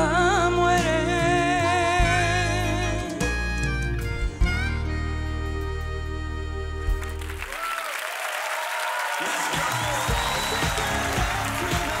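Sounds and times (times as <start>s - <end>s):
music with pulsing bass: 0.0s - 7.4s, 9.9s - 12.0s
audience applauding and cheering: 6.9s - 12.0s.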